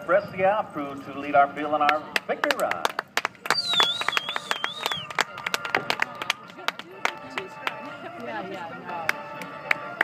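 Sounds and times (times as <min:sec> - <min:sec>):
background music: 0:00.0 - 0:10.0
spectators applauding: 0:02.4 - 0:07.8
wavering high whistle: 0:03.5 - 0:05.1.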